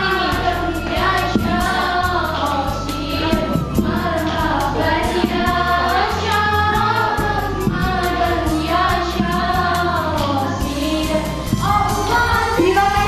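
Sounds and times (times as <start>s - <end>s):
backing track with beat and bass: 0.0s - 13.0s
voices singing together: 0.0s - 13.0s.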